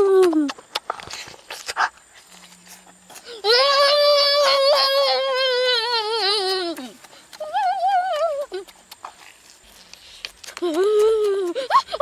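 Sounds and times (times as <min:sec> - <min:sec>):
child humming mmm: 0:03.3 - 0:08.7, 0:10.5 - 0:11.8
lip-smacking and chewing: 0:05.3 - 0:12.0.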